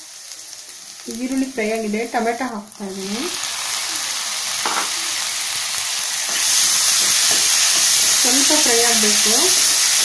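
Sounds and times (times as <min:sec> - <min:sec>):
tomato sizzling in a hot pan: 0:00.0 - 0:10.0.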